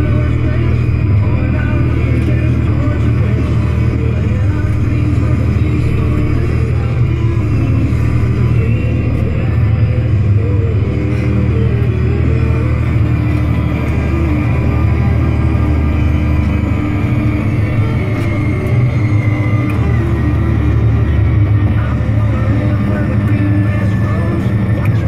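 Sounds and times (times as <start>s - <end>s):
music playing: 0.0s - 25.0s
tractor engine drone: 0.0s - 25.0s.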